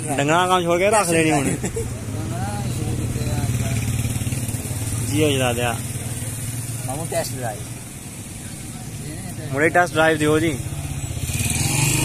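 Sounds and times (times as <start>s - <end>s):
motorcycle rickshaw engine idling: 0.0s - 11.5s.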